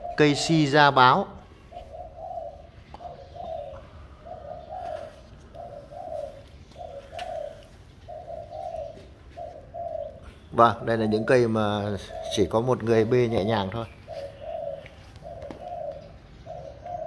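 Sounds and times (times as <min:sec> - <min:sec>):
dove cooing: 0:00.0 - 0:17.0.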